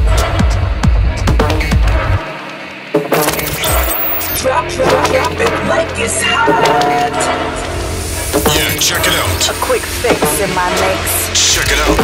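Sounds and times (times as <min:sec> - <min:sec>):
techno music: 0:00.0 - 0:12.0.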